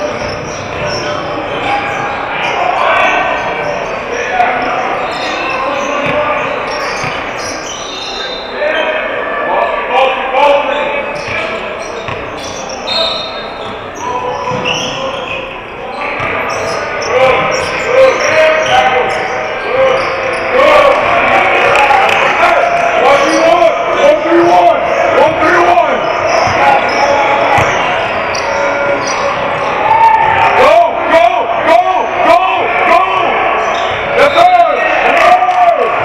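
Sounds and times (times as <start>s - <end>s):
indistinct voices: 0.0s - 36.0s
basketballs bouncing on wooden floor: 14.4s - 14.7s, 27.4s - 28.0s.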